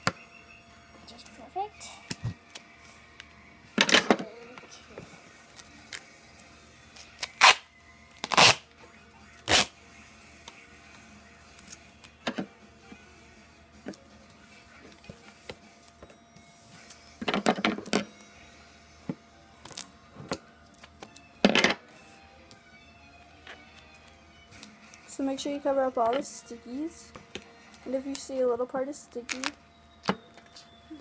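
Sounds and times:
duct tape ripping off roll: 7.0s - 8.6s, 9.4s - 9.8s, 29.3s - 29.6s.

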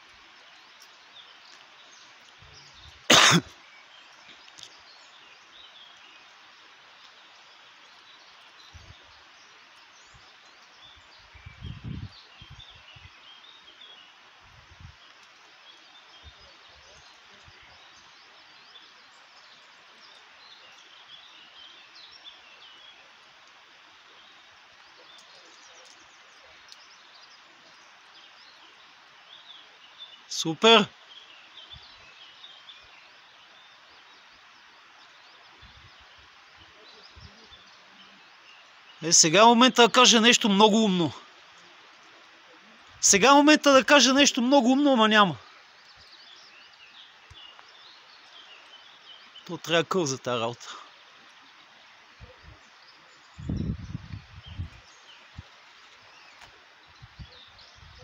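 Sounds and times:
faint bird chirps: 0.0s - 58.0s.

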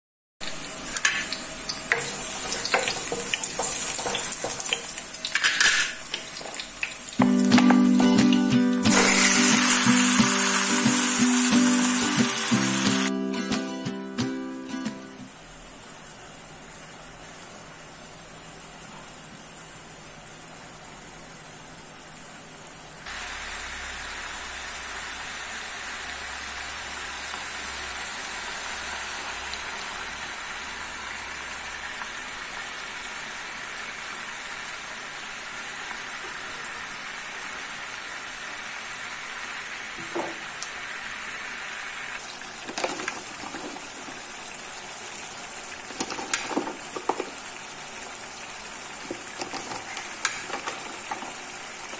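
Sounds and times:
chicken sizzling in hot oil: 0.4s - 13.1s, 23.1s - 51.9s
background music: 7.2s - 15.3s.

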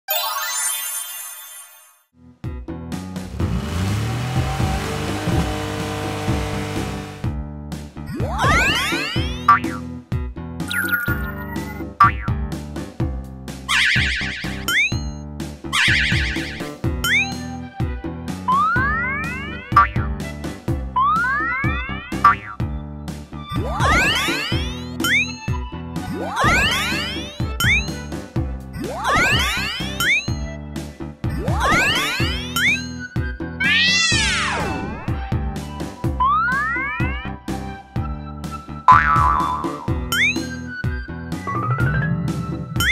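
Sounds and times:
upbeat children's music: 0.1s - 1.9s, 7.7s - 42.9s
cartoon swoop effects: 15.8s - 17.4s, 18.5s - 19.6s, 28.8s - 30.4s, 31.4s - 32.9s.

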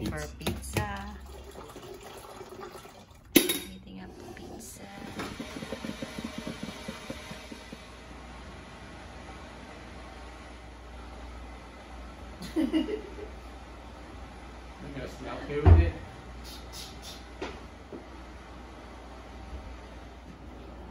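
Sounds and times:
coffee maker brewing hiss and gurgle: 0.0s - 20.9s.

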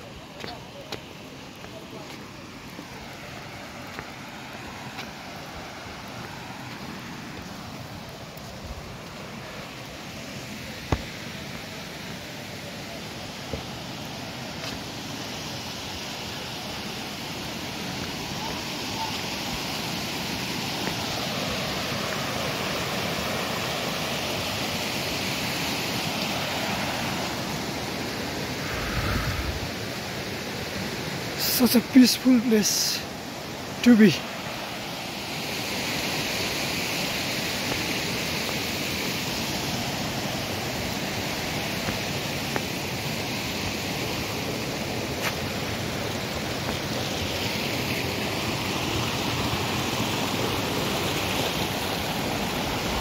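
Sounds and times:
rushing stream water: 0.0s - 53.0s.

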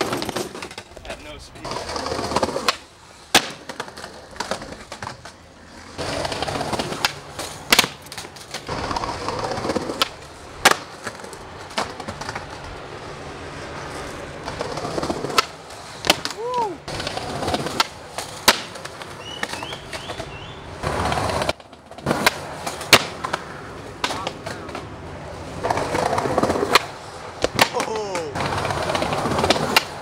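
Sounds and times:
skateboard clacks: 0.0s - 30.0s
skateboard wheels rolling on concrete: 0.0s - 30.0s.

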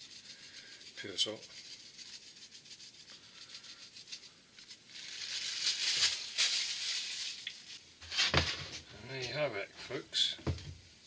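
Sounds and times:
plastic bag crinkling: 0.0s - 7.8s
salt shaken from container: 0.0s - 7.8s.

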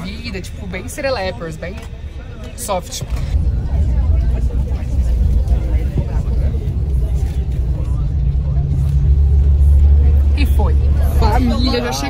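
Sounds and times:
bus engine rumble: 0.0s - 12.0s
faint voices: 0.0s - 12.0s.

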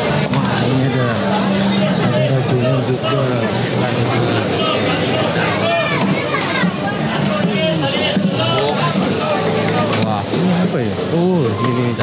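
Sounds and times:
voices talking: 0.6s - 12.0s.

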